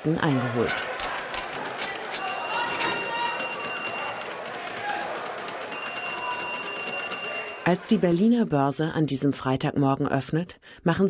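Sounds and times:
electric bell ringing: 2.2 - 4.3, 5.7 - 7.9.

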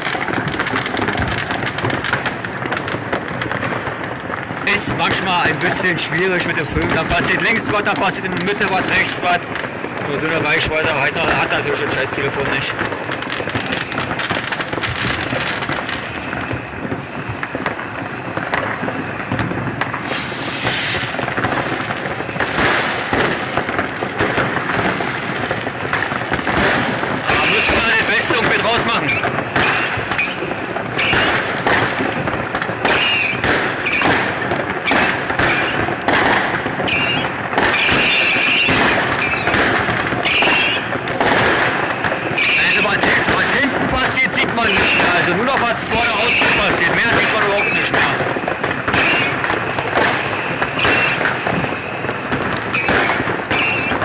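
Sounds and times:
fireworks crackling and banging: 0.0 - 54.0
rockets bursting: 0.0 - 54.0.

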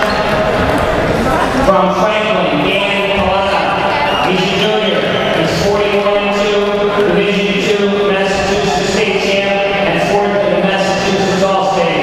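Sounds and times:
echoing public-address voice: 0.0 - 12.0.

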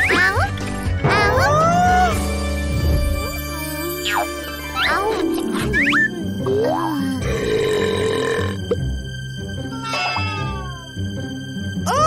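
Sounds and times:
light background music: 0.0 - 12.0
cartoon burp: 7.3 - 8.7.

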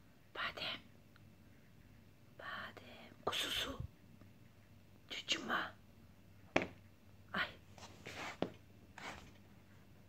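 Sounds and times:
woman whispering: 0.3 - 0.9, 2.4 - 3.9, 5.1 - 5.8, 7.3 - 7.6.

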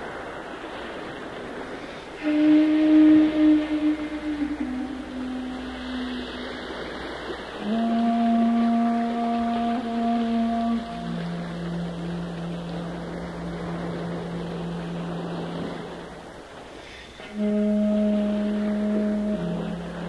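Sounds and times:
rushing natural background sound: 0.0 - 20.0
bamboo flute playing long low notes: 0.1 - 20.0.

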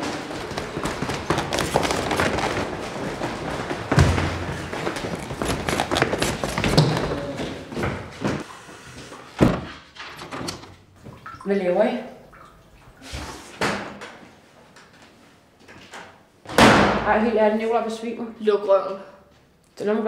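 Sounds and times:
hurried footsteps on stairs: 0.0 - 8.5
door banging shut: 16.5 - 17.1.

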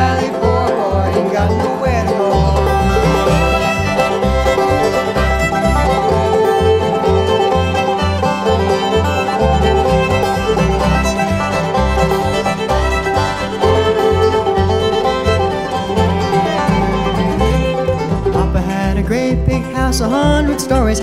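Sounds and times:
banjo: 0.0 - 21.0
fiddle bowing melody: 0.0 - 21.0
guitar: 0.0 - 21.0
upright bass low notes: 0.0 - 21.0.

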